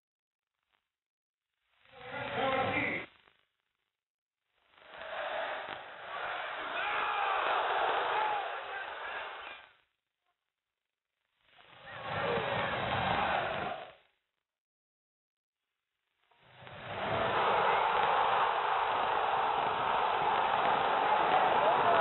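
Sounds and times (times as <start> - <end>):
stadium crowd chanting and singing: 4.9 - 9.6, 11.8 - 14.0, 16.8 - 22.0.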